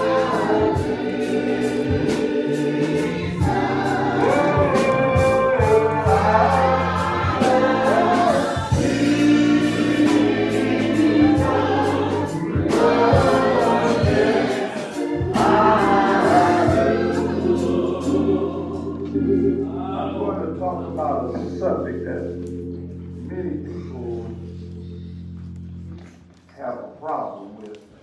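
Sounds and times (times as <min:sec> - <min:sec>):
choir singing: 0:00.0 - 0:24.5
bass line: 0:00.0 - 0:26.2.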